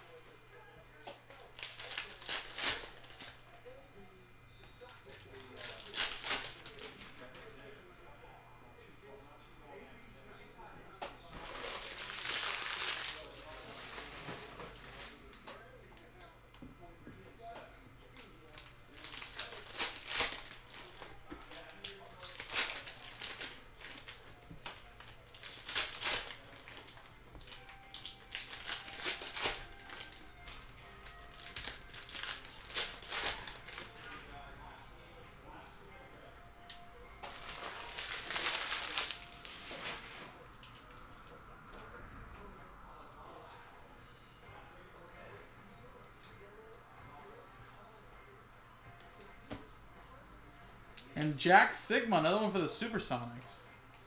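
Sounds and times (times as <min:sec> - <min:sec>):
foil packs crinkling and tearing: 0:01.4 - 0:03.4, 0:05.1 - 0:07.5, 0:11.3 - 0:15.2, 0:18.2 - 0:33.9, 0:37.2 - 0:40.4
card handling: 0:11.3 - 0:15.2, 0:37.2 - 0:40.4.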